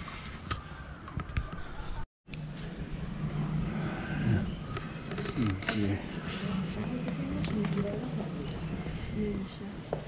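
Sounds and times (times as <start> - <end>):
murmured voices: 3.6 - 9.9.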